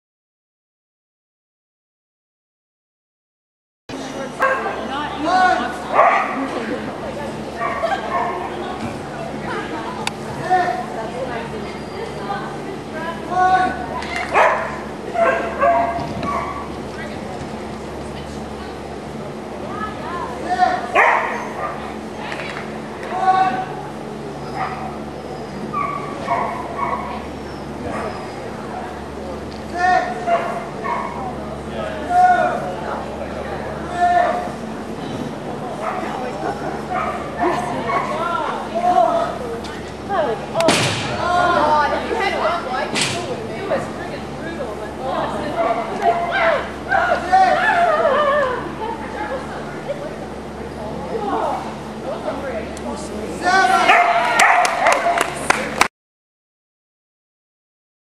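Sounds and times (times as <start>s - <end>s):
people's voices: 3.9s - 55.9s
dog barking and yipping: 14.2s - 16.7s, 21.0s - 21.8s, 25.7s - 27.2s, 53.9s - 55.0s.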